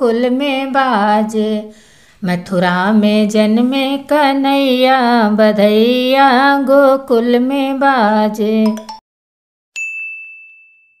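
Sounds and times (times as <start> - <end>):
bell-like chime ding: 9.8 - 11.0.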